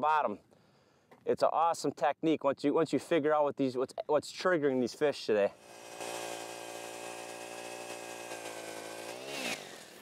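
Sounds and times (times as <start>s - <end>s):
ice auger engine running: 5.6s - 10.0s.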